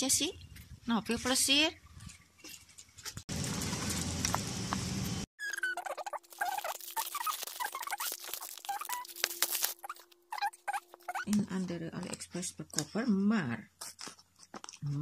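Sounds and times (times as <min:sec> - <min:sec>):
plastic mailer bag torn open: 0:05.9 - 0:10.9.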